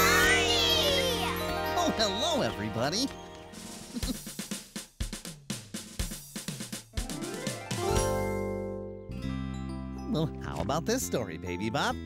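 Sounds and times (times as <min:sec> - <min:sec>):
children's excited voices: 0:00.0 - 0:01.8
tinkling musical jingle: 0:00.0 - 0:03.6.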